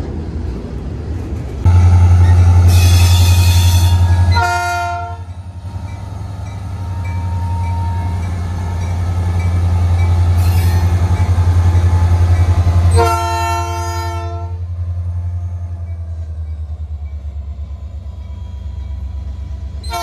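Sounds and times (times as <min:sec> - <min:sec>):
diesel locomotive engine drone: 0:00.0 - 0:20.0
multi-note train horn blast: 0:01.7 - 0:05.7, 0:11.9 - 0:14.8.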